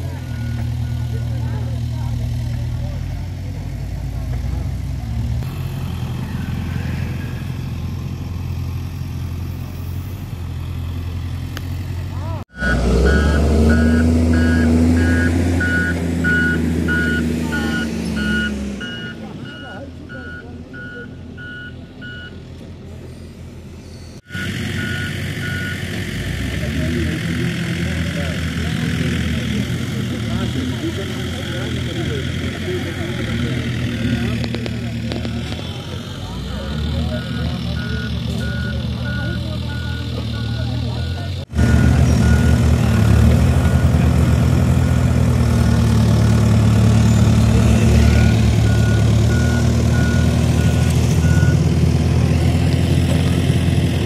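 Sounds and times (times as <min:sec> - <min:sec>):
diesel engine running: 0:00.0 - 0:54.0
reversing alarm beeping: 0:12.5 - 0:22.4, 0:24.2 - 0:26.0, 0:36.8 - 0:44.0, 0:47.9 - 0:51.6.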